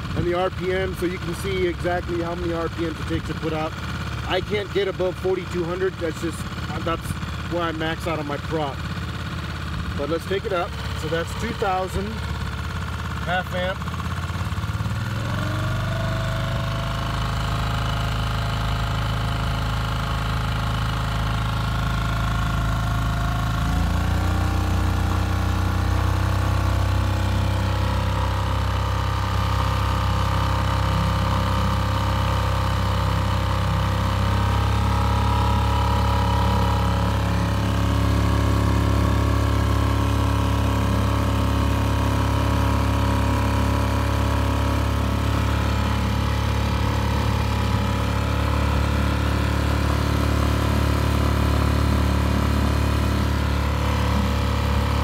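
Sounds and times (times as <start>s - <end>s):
outboard motor running: 0.0s - 55.0s.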